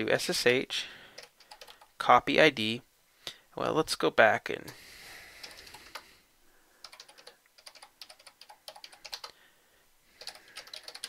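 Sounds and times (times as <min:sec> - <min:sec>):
typing on a computer keyboard: 0:01.2 - 0:01.9, 0:05.4 - 0:06.0, 0:06.8 - 0:09.4, 0:10.2 - 0:11.0.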